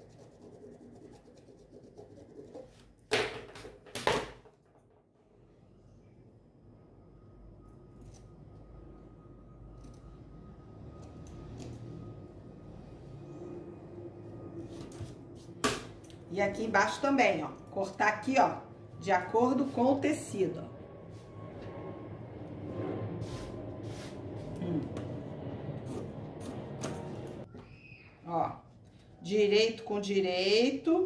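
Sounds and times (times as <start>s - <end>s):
scissors cutting fabric: 9.7s - 10.2s.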